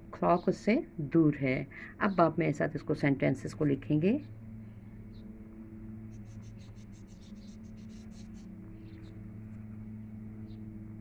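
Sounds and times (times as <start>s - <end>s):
steady low hum: 0.0s - 11.0s
pencil scratching on paper: 6.1s - 8.5s.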